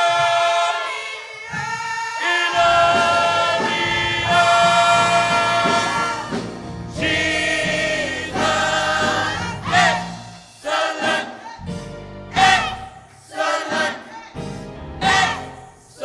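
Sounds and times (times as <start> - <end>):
gospel choir singing: 0.0 - 16.0.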